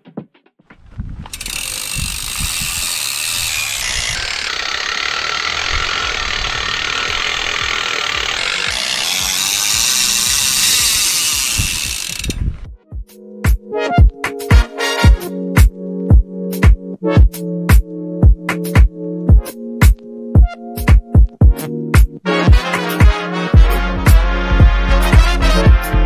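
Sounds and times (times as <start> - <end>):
bike freehub ratcheting: 1.2 - 12.5.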